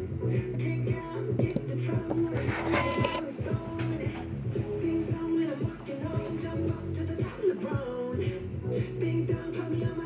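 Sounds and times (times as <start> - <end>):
upbeat pop song on radio: 0.0 - 10.0.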